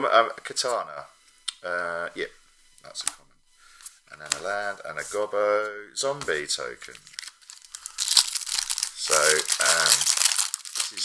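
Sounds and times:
foil wrapper crinkling: 0:06.9 - 0:11.0
wrapper tearing snap: 0:07.0 - 0:11.0.

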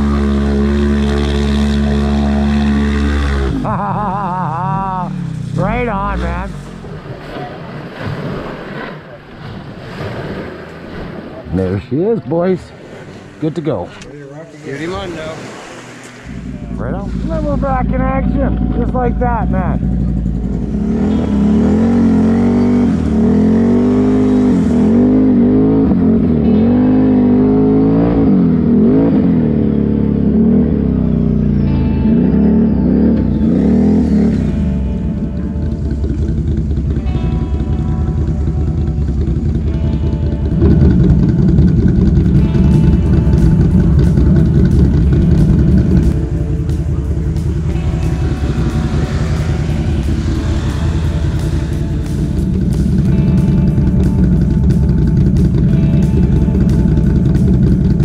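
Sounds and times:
atv engine revving: 0:00.0 - 0:58.0
background music: 0:11.5 - 0:58.0.

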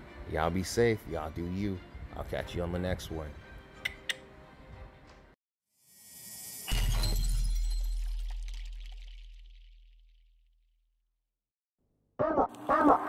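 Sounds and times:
background music: 0:00.0 - 0:05.4.

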